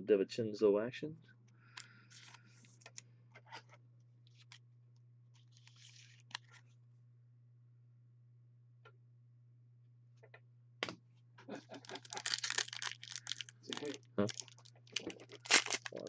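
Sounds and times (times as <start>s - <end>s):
wrapper crinkling and tearing: 11.7s - 16.0s.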